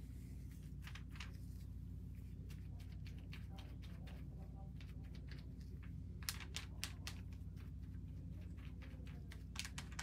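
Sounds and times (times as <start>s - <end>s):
faint low hum: 0.0s - 10.0s
brush clicking on plastic film: 2.4s - 10.0s.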